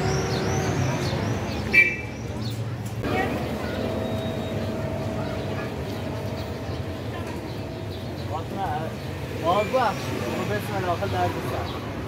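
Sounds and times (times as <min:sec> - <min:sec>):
low rumble of vehicles: 0:00.0 - 0:12.0.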